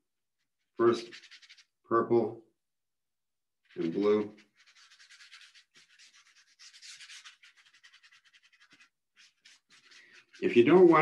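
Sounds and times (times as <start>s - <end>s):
paintbrush scratching on paper: 0.4s - 1.8s, 3.6s - 11.0s.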